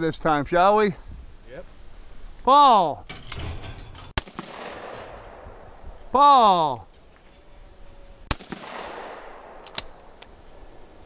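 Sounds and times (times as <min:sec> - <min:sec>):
shotgun shot echoing: 0:04.2 - 0:05.8, 0:08.3 - 0:10.2.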